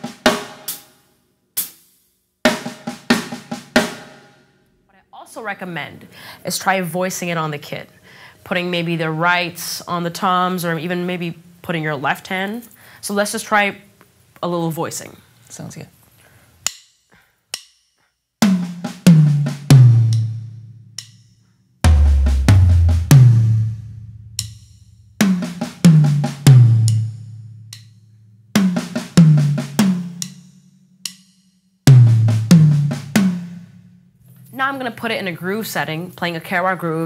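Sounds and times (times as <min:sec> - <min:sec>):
drum fill on toms: 0:18.4 - 0:21.1, 0:21.9 - 0:27.9, 0:28.6 - 0:30.4, 0:31.9 - 0:33.8.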